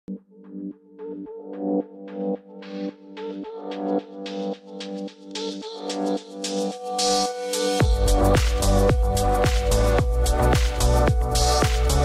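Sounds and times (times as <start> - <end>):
electronic music: 0.1 - 12.0.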